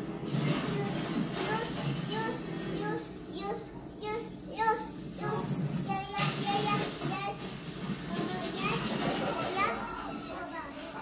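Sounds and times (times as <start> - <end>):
voices in the room: 0.0 - 11.0.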